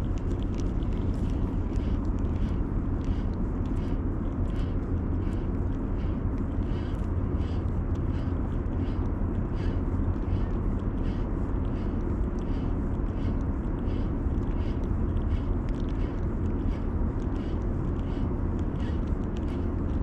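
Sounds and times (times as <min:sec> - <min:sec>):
distant harbour and traffic rumble: 0:00.0 - 0:20.0.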